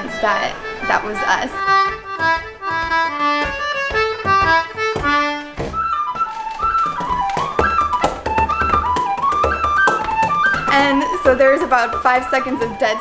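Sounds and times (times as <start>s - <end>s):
low accompaniment: 0.0s - 13.0s
reedy wind instrument melody: 0.0s - 13.0s
tin whistle playing lively tune: 5.7s - 13.0s.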